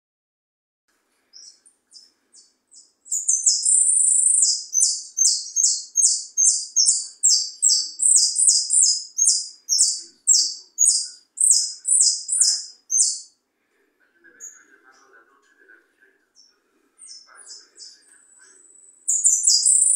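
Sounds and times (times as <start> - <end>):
finch singing: 1.3 - 13.4, 16.4 - 19.9.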